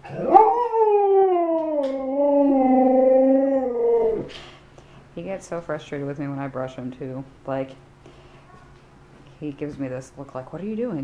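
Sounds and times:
dog howling: 0.0s - 4.3s.

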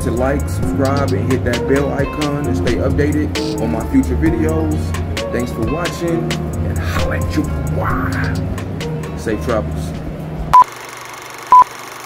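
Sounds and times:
background music: 0.0s - 10.6s.

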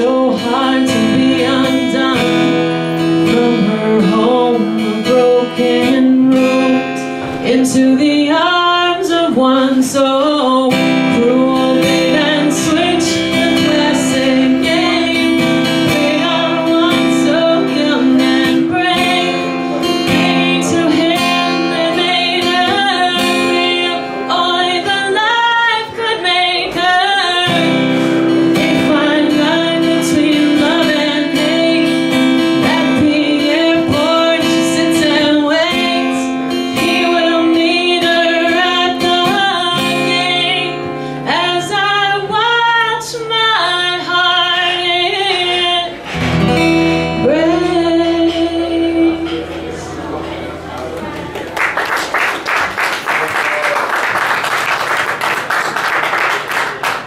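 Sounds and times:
woman singing: 0.0s - 49.6s
acoustic guitar strumming: 0.0s - 51.5s.

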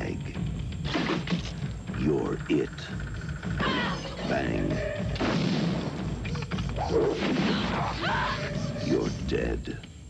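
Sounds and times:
dramatic music: 0.4s - 9.2s.

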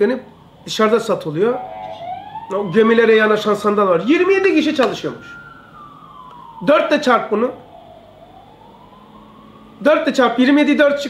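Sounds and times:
faint siren wailing: 0.0s - 11.0s.

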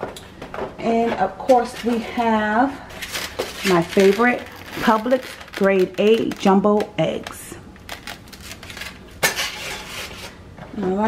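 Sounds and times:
carton scraping rustle: 3.0s - 6.6s.

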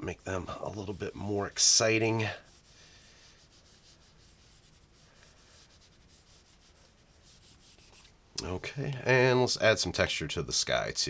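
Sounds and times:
stylus rubbing on glass screen: 0.0s - 8.1s.

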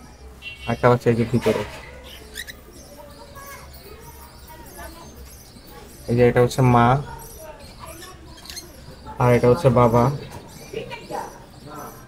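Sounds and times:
caged birds chirping: 0.0s - 12.0s.

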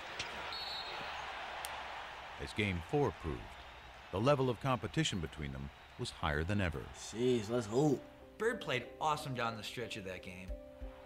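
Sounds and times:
arena crowd noise: 0.0s - 8.3s.

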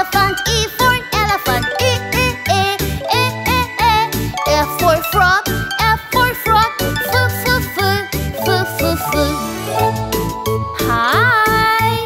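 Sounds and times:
children's song backing music: 0.0s - 12.0s.

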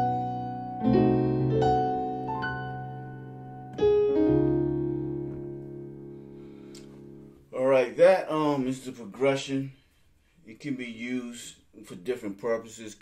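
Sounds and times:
digital piano chords: 0.0s - 7.5s.

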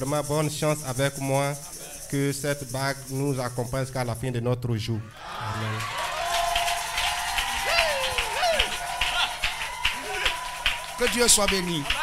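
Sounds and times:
congregation clapping: 5.2s - 12.0s.

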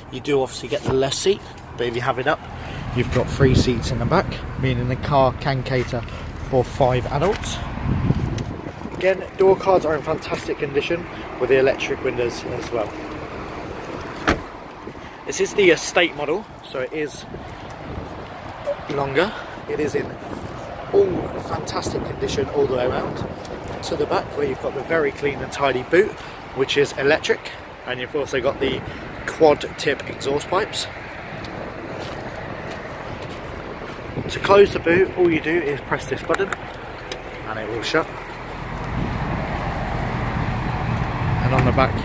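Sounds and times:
car door shutting: 14.2s - 14.6s.

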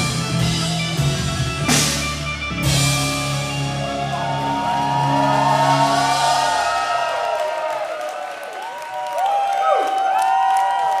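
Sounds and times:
crowd cheering and whistling: 2.4s - 11.0s.

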